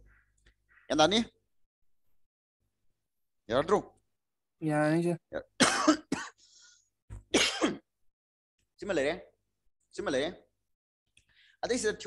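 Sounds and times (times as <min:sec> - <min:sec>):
man coughing: 0:05.6 - 0:06.4, 0:07.3 - 0:07.9.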